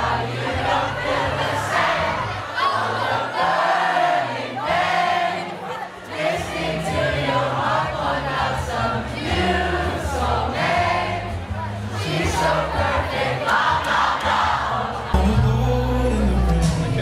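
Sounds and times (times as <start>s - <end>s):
crowd singing along: 0.0s - 17.0s
person singing into a microphone: 15.0s - 17.0s
live band music: 15.1s - 17.0s.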